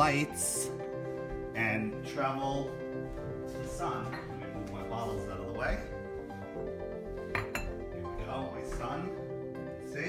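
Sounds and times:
background music: 0:00.0 - 0:10.0
glass bottles clinking: 0:07.4 - 0:07.8.

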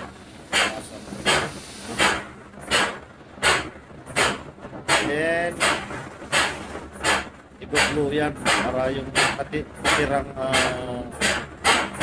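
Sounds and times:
pump air exhaust hissing: 0:00.0 - 0:12.0.

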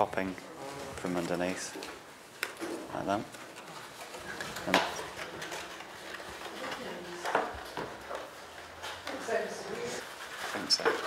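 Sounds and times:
paper being folded: 0:00.0 - 0:11.0.

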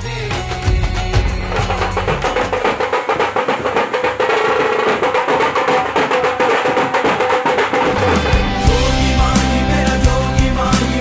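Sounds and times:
deep bass: 0:00.0 - 0:02.8, 0:08.3 - 0:11.0
fast even drumming: 0:00.3 - 0:11.0.

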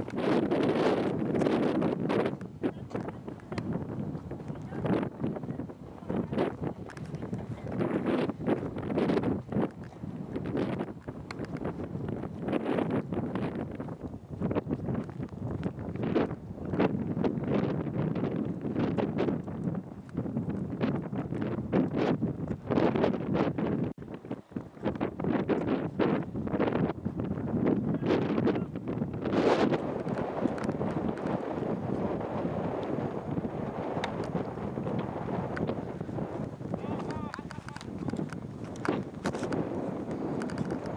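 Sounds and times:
wind buffeting microphone: 0:00.0 - 0:40.9.

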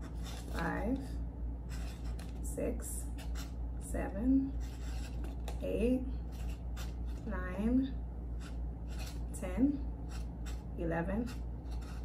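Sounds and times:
woman speaking: 0:00.5 - 0:01.2, 0:02.4 - 0:03.1, 0:03.8 - 0:04.6, 0:05.6 - 0:06.2, 0:07.2 - 0:08.0, 0:09.3 - 0:09.9, 0:10.8 - 0:11.4
marker scratching on foam cup: 0:01.7 - 0:02.4, 0:03.1 - 0:03.6, 0:04.5 - 0:05.6, 0:06.3 - 0:07.3, 0:08.4 - 0:09.3, 0:10.1 - 0:12.0.

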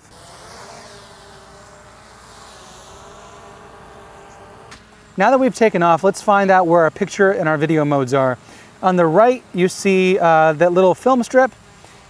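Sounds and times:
drone propellers buzzing: 0:00.0 - 0:12.0.

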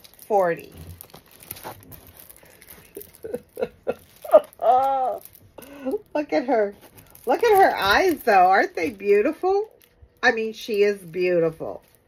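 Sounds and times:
plastic rustling: 0:00.0 - 0:12.0
woman laughing softly: 0:02.6 - 0:06.0.

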